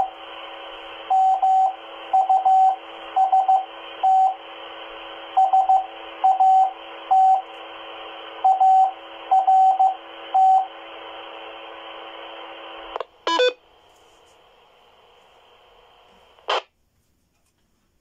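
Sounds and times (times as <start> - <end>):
steady radio hiss: 0.0 - 18.0
morse code beeps: 1.1 - 4.4, 5.4 - 7.5, 8.4 - 10.7, 13.3 - 13.6.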